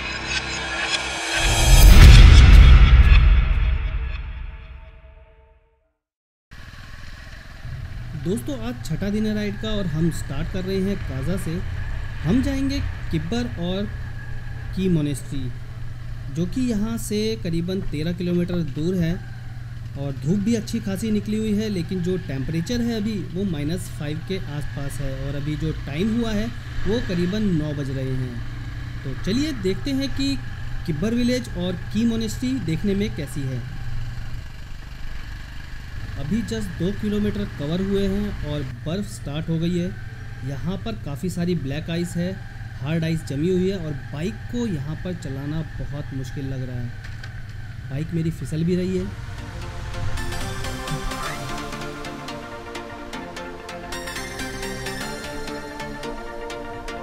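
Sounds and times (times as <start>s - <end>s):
motorcycle engine running: 6.6s - 46.2s.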